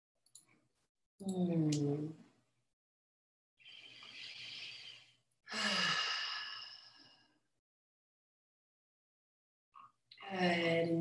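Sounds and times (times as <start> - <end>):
woman breathing in softly: 3.6 - 7.4.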